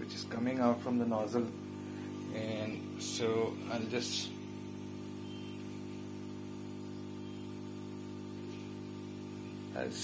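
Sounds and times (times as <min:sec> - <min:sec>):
hot-air tool blowing: 0:01.0 - 0:10.0.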